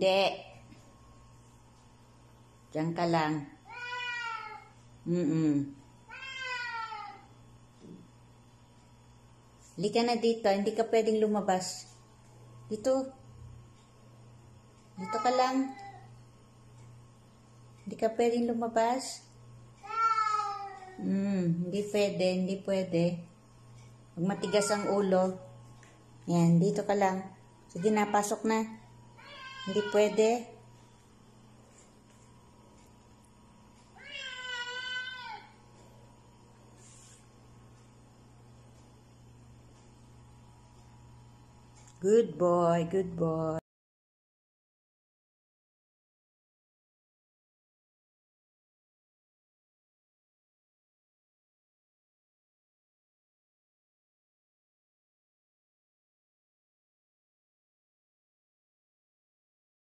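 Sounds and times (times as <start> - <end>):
cat meowing: 6.1 - 7.2, 29.2 - 30.1, 34.0 - 35.5.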